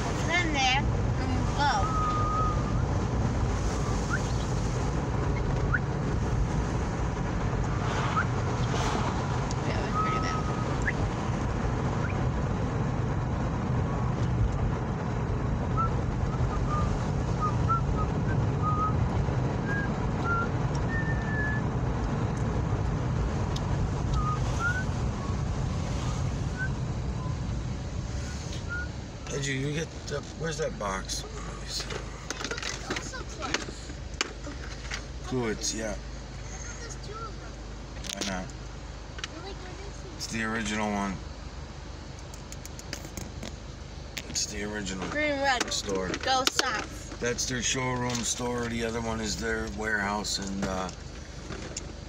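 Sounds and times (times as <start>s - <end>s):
car driving rumble inside cabin: 0.0s - 52.0s.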